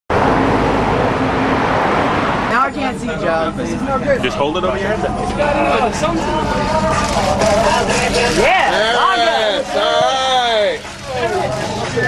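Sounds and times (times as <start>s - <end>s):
road traffic noise: 0.1s - 12.0s.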